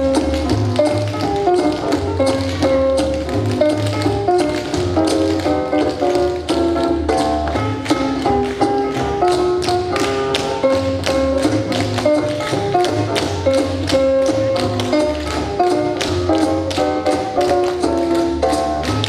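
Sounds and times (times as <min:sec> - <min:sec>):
music with melody and bass: 0:00.0 - 0:19.0
tap shoes striking stage floor: 0:00.0 - 0:19.0.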